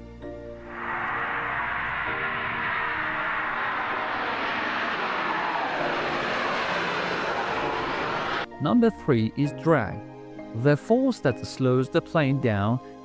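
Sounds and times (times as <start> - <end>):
jet engines roaring at takeoff: 0.6 - 8.5.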